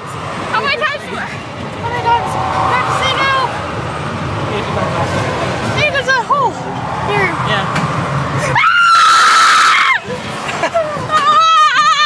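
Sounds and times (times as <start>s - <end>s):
fairground ride rumble: 0.0s - 12.0s
loud high sustained scream: 1.8s - 4.1s, 8.5s - 10.0s.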